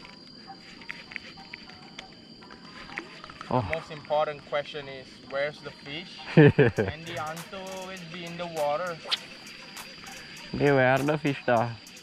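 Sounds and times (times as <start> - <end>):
steady high-pitched whine: 0.0 - 12.0.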